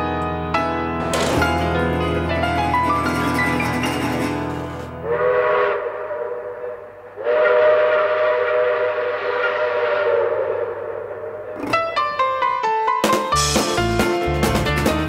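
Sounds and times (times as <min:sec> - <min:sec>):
train whistle blasts: 0:05.0 - 0:11.5.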